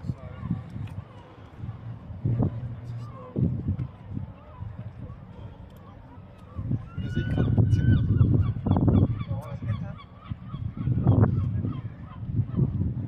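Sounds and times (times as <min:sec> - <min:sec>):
low rumble: 0:00.0 - 0:05.6.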